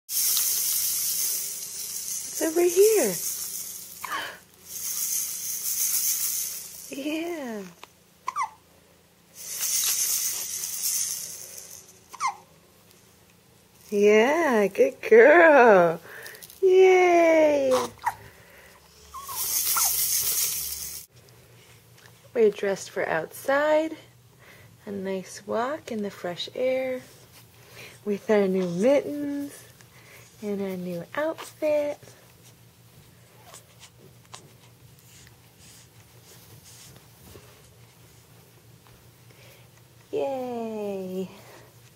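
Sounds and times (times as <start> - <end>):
plastic baby rattle shaken: 0.1 - 7.6, 9.4 - 12.4, 19.2 - 21.1
rustling of baby clothing: 0.2 - 8.5, 15.4 - 18.2, 19.1 - 22.7, 26.8 - 41.9.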